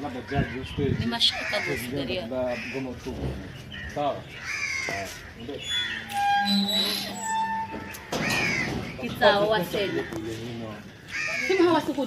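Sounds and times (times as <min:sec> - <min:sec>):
people talking loudly: 0:00.0 - 0:12.0.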